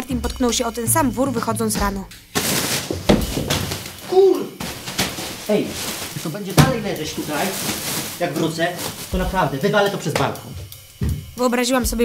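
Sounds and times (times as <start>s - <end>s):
bag of clothes rustling: 2.3s - 11.2s
body thumping on bag: 2.4s - 9.6s.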